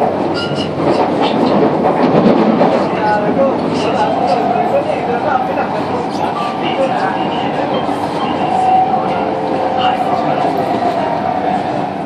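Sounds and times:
train wheels running on track: 0.0s - 12.0s.

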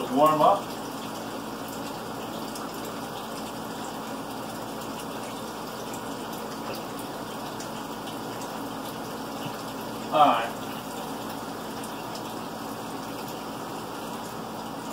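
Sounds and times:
faucet running into sink: 0.0s - 14.9s.

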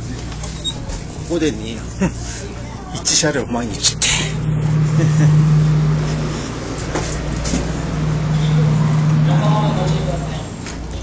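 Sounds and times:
train running hum and rumble: 0.0s - 11.0s.

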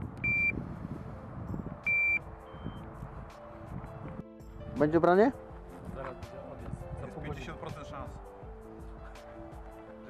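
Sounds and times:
bite alarm high beeps: 1.9s - 2.8s.

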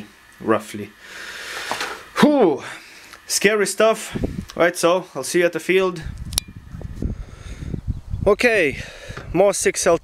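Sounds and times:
wind buffeting microphone: 4.1s - 4.6s, 6.0s - 10.0s
sharp click: 6.2s - 6.5s.

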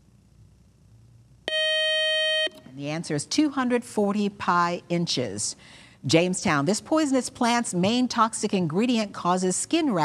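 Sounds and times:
electronic beep tone: 1.5s - 2.6s.

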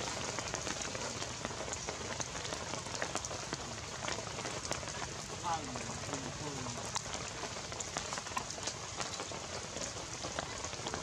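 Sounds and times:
rain falling on leaves: 0.0s - 11.0s
water drips ticking: 0.0s - 11.0s.

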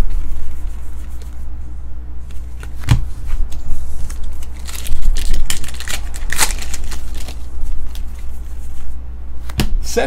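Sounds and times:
steady low hum: 0.0s - 10.0s
wrapper crinkling and tearing: 4.1s - 8.1s.

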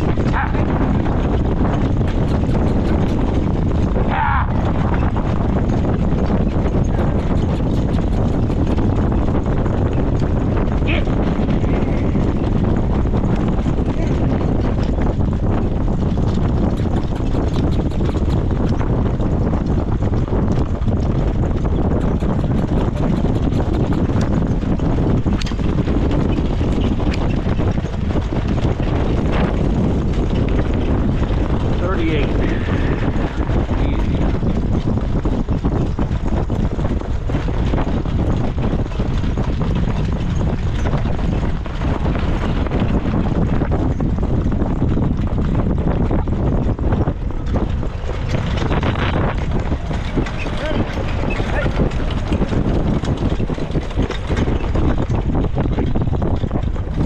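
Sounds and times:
cart rattling: 0.0s - 57.0s
horse hooves on dirt track: 0.0s - 57.0s
wind buffeting microphone: 0.0s - 57.0s.

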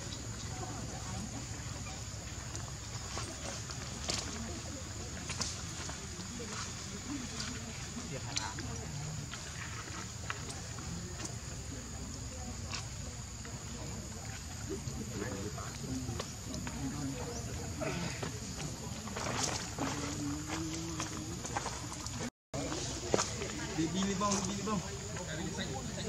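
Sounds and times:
faint voices murmuring: 0.0s - 26.0s.

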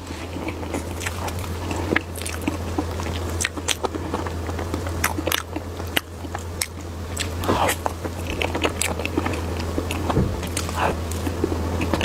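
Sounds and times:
low hum: 0.0s - 12.0s
person chewing cake: 0.0s - 12.0s.

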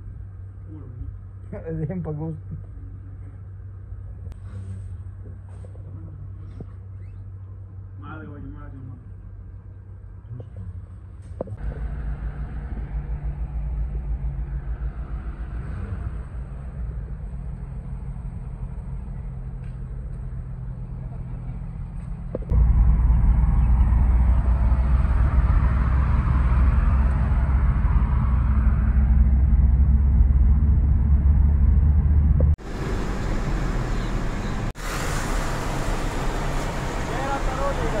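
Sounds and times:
car engine and tyre rumble: 0.0s - 38.0s
wind and road noise: 0.0s - 38.0s.

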